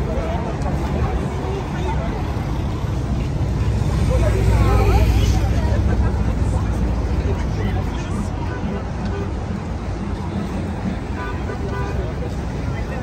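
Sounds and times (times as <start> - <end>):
crowd voices chattering: 0.0 - 13.0.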